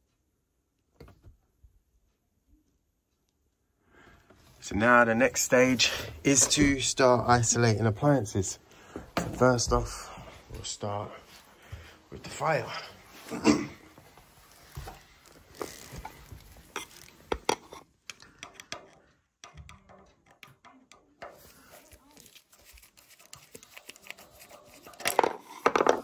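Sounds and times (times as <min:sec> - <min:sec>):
screwdriver clicking and scraping metal: 0:15.6 - 0:25.7.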